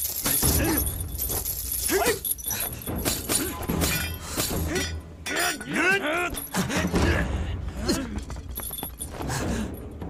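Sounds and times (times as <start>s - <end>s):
chains clinking and swishing: 0.0s - 5.7s, 8.4s - 9.8s.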